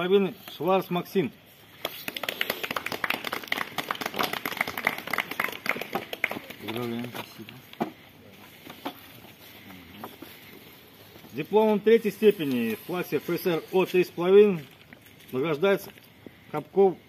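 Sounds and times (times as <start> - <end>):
people applauding: 1.8 - 7.2
person speaking: 6.3 - 16.0.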